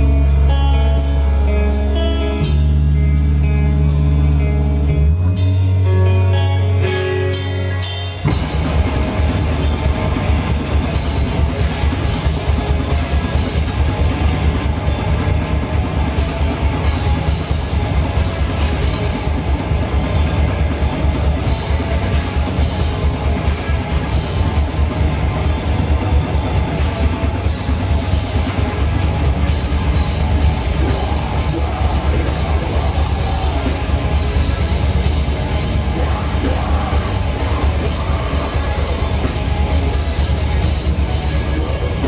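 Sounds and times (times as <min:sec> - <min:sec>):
held low guitar and bass notes: 0:00.0 - 0:42.0
fast pounding drums: 0:08.3 - 0:42.0.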